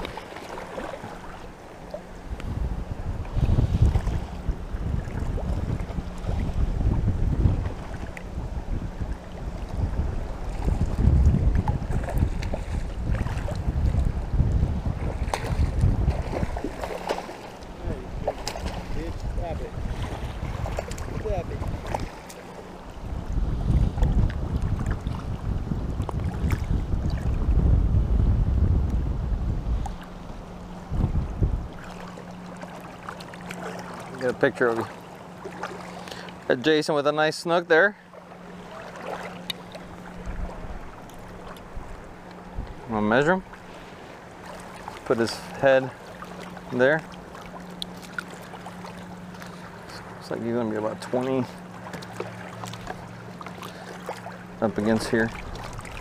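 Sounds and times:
water lapping and splashing: 0.0s - 56.0s
wind buffeting microphone: 2.2s - 32.5s, 38.4s - 47.0s, 53.7s - 56.0s.

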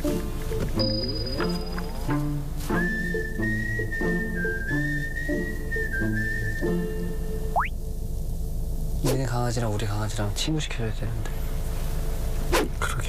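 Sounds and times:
moving bass line: 0.7s - 7.9s
whistled melody: 0.8s - 7.7s.

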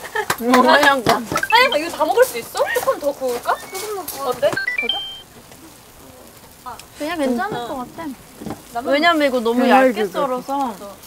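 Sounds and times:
meat sizzling on a grill: 0.0s - 11.0s.

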